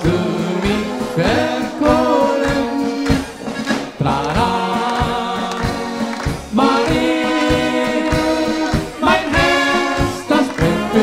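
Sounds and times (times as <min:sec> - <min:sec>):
brass band polka with accordion: 0:00.0 - 0:11.0.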